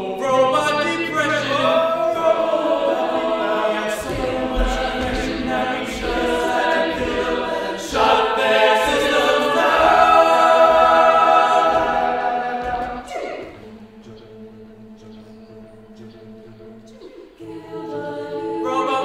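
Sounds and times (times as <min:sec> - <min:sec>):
group of voices singing: 0:00.0 - 0:19.0.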